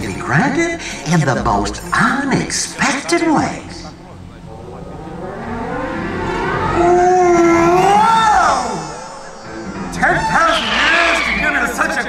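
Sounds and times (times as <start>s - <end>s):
low rumble with rising tone: 1.1s - 11.8s.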